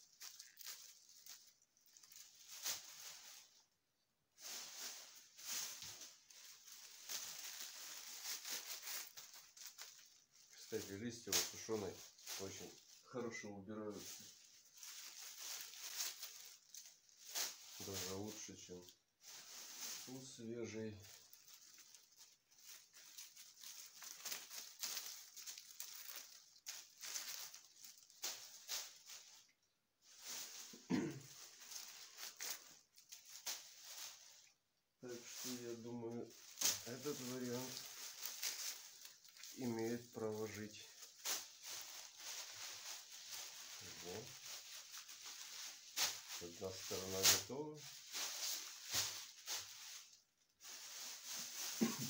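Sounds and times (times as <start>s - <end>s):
dry leaves and twigs rustling: 0.0s - 3.8s, 4.4s - 52.0s.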